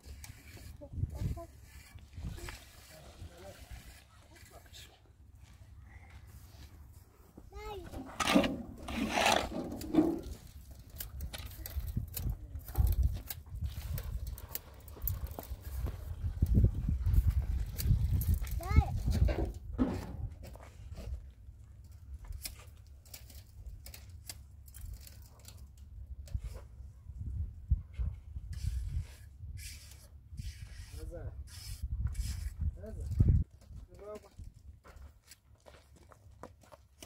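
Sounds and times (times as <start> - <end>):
shovel scraping wet cement: 0.0 - 4.9, 7.9 - 10.6.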